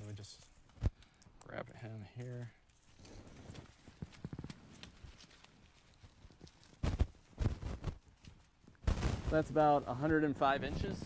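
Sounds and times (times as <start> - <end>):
leaves and stalks rustling: 1.8 - 11.0.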